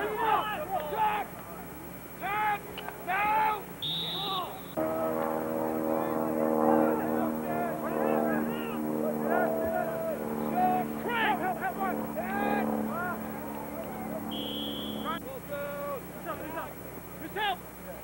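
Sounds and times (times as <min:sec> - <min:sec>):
low droning hum: 0:00.0 - 0:17.2
people shouting and calling: 0:00.0 - 0:17.6
referee's whistle blast: 0:03.8 - 0:04.8, 0:14.3 - 0:15.2.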